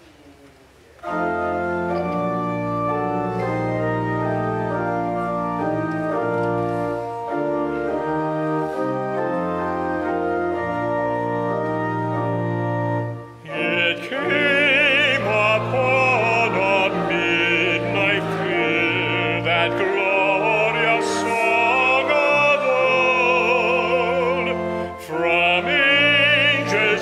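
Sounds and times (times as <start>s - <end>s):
church organ playing hymn: 1.0s - 27.0s.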